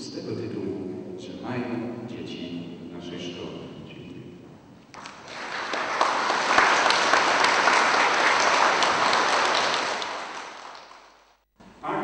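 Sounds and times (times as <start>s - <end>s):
audience applauding: 5.0s - 11.4s.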